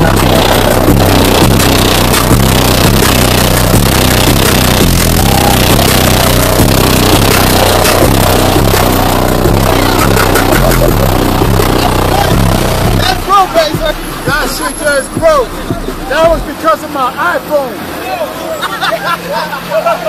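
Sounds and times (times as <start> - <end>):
loud bass-heavy music: 0.0 - 18.4.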